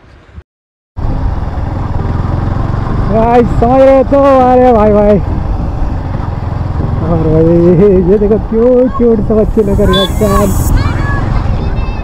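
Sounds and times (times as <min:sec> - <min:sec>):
road noise: 0:00.0 - 0:00.4, 0:01.0 - 0:12.0
motorcycle engine rumble: 0:01.0 - 0:12.0.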